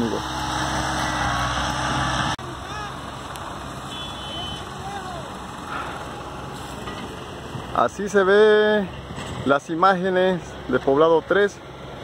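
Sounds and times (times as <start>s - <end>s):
tractor engine running: 0.0s - 8.4s.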